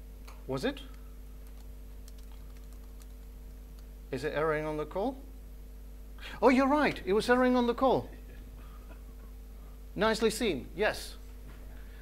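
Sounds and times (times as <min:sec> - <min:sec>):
low electrical hum: 0:00.0 - 0:12.0
computer keyboard keystrokes: 0:00.9 - 0:03.9.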